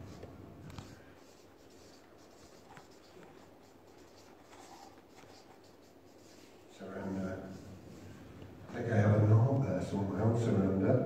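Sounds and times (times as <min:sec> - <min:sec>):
marker pen scratching on paper: 0:00.0 - 0:08.2.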